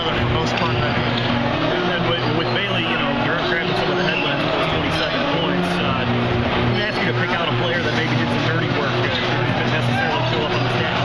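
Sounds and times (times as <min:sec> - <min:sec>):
dense gym background noise: 0:00.0 - 0:11.0.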